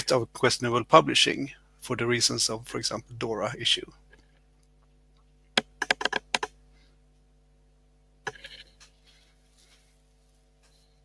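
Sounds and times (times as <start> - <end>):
faint steady hum: 0.0 - 11.0
computer keyboard typing: 5.6 - 6.5.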